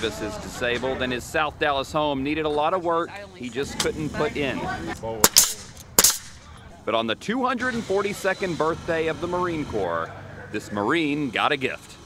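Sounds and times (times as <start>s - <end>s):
nail gun firing into wood: 5.2s - 6.4s.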